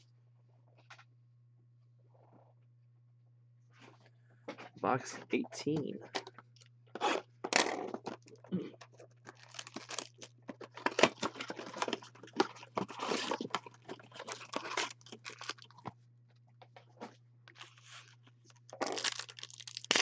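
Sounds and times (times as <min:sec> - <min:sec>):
plastic shrink-wrap crinkling: 0:08.2 - 0:15.8, 0:17.5 - 0:20.0.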